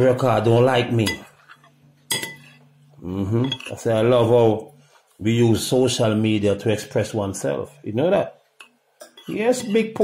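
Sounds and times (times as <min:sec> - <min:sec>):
faint low hum: 0:00.0 - 0:10.0
tableware clink: 0:01.0 - 0:02.7, 0:03.4 - 0:03.8, 0:09.0 - 0:09.8.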